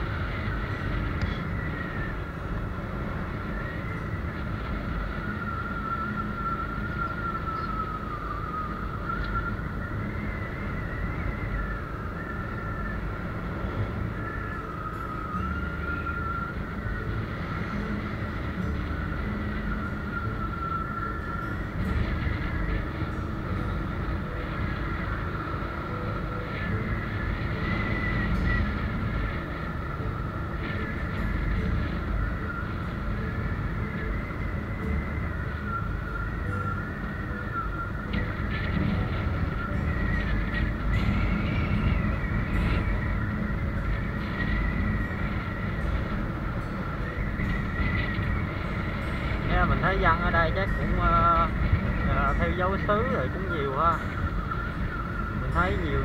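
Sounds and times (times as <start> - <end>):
high wavering engine whine: 0.0 - 56.0
wind and road noise: 0.0 - 56.0.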